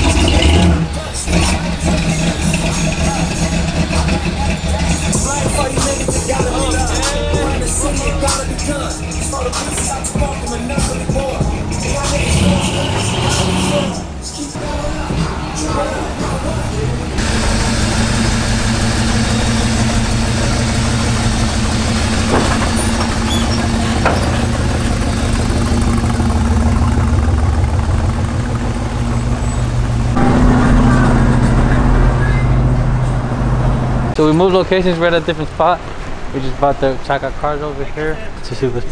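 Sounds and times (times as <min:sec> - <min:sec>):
car engine running: 0:00.0 - 0:34.6.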